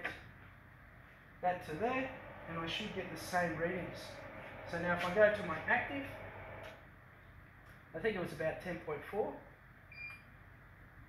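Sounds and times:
person speaking: 1.4 - 6.6.

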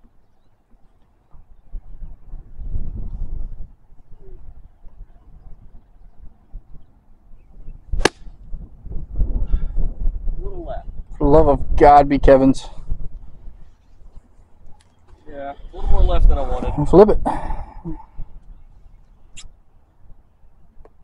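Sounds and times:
wind rumbling on microphone: 0.0 - 21.0
golf club striking ball: 8.0 - 8.4.

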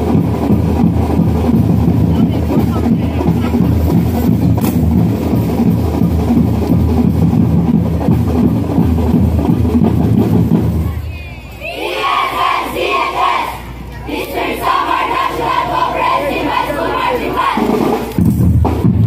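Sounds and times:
marching band playing: 0.0 - 19.0
crowd shouting together: 10.8 - 17.8.

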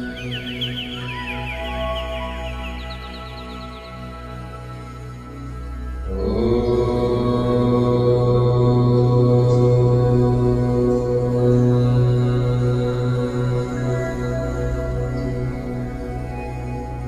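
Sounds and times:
soft new-age music: 0.0 - 17.0
man chanting om: 6.0 - 17.0.

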